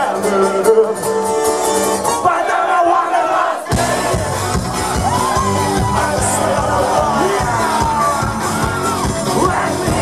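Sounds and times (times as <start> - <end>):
audience shouting and singing: 0.0 - 10.0
band playing live: 0.0 - 10.0
drums and bass: 3.7 - 10.0.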